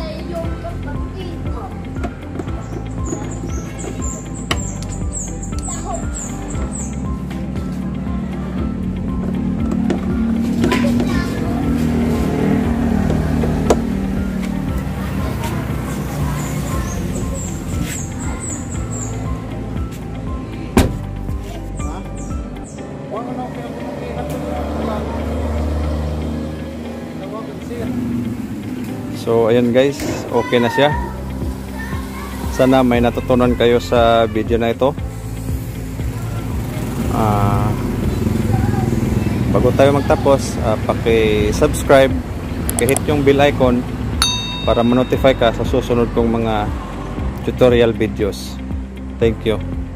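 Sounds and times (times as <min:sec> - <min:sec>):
engine rumbling: 0:00.0 - 0:30.3, 0:34.4 - 0:49.9
background music: 0:00.0 - 0:49.9.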